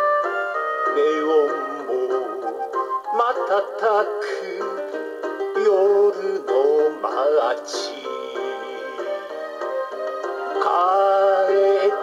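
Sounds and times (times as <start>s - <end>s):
karaoke backing track: 0.0s - 12.0s
man singing a ballad: 0.9s - 2.5s, 3.1s - 9.1s, 10.6s - 12.0s.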